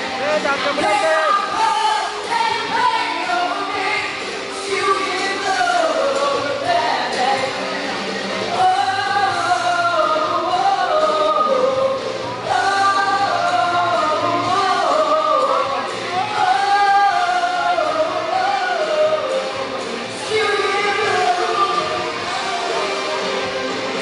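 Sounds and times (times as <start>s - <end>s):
musical accompaniment: 0.0s - 24.0s
woman singing pop song: 0.0s - 24.0s.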